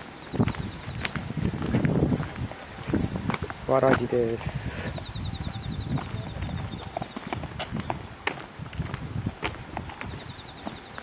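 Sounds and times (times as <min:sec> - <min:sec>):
footsteps on asphalt: 0:00.0 - 0:11.0
high rapidly pulsing chirp: 0:03.6 - 0:07.9, 0:09.6 - 0:11.0.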